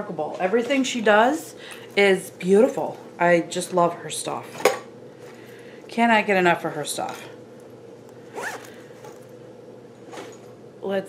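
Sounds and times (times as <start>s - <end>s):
faint steady hum: 0.0s - 11.0s
zipper pulled: 8.3s - 9.3s.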